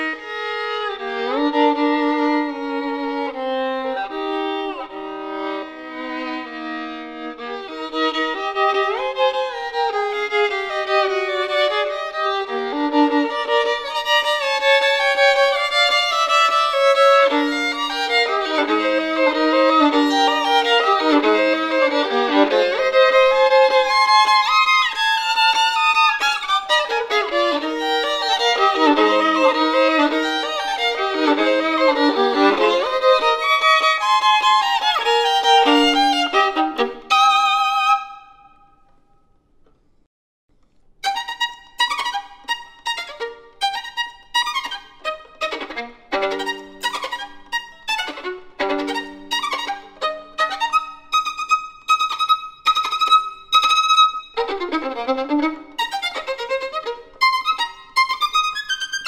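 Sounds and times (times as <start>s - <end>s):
solo violin playing: 0.0s - 38.9s, 41.0s - 59.0s.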